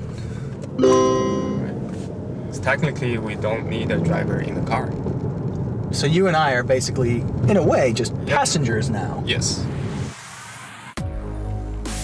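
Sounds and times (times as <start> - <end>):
bright chord ringing: 0.8 - 1.8.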